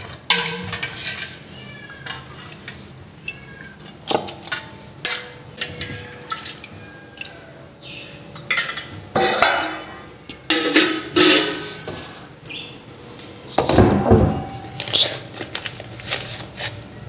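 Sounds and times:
liquid sloshing in pot: 2.0s - 7.5s.

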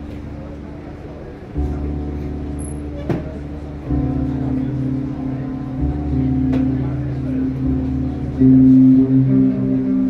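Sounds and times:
guitar and keyboard drone: 0.0s - 10.0s
low chord: 0.0s - 10.0s.

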